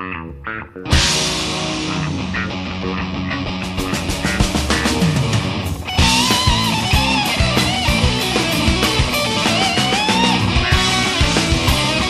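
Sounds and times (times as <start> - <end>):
rock band with guitars: 0.0 - 12.0.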